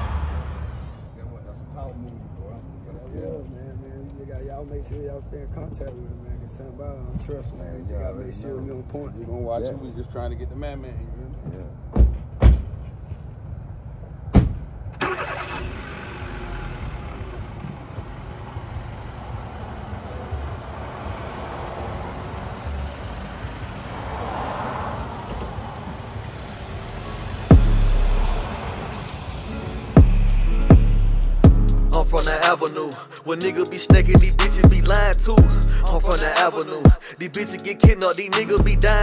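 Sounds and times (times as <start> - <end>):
car engine starting and running: 0.0 - 1.2, 14.8 - 39.0
music: 27.5 - 28.5, 29.5 - 39.0.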